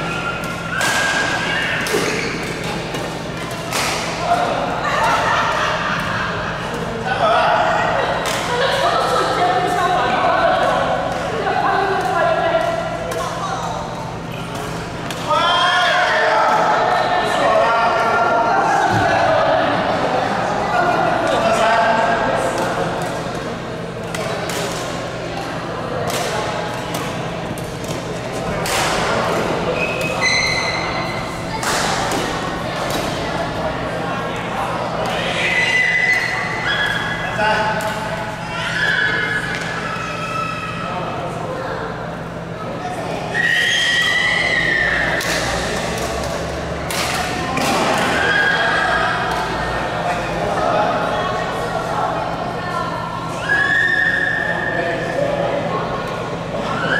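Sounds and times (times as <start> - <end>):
voices talking in echoing hall: 0.0 - 56.9.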